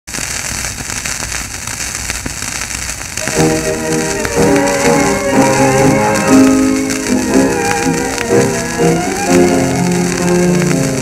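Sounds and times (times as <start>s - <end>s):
record crackles and clicks: 0.0s - 11.0s
record surface hiss: 0.1s - 11.0s.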